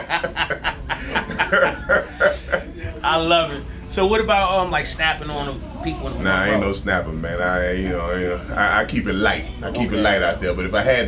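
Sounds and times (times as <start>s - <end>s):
men laughing: 0.0s - 3.0s.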